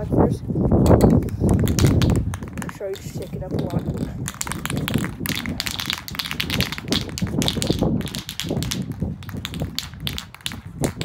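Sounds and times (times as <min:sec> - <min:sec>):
spray can ball rattling: 0:00.8 - 0:11.0.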